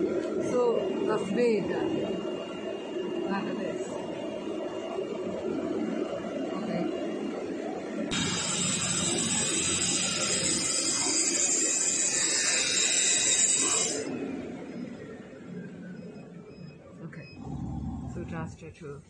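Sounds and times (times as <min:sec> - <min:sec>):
cutting machine rushing hiss: 0:08.1 - 0:14.2.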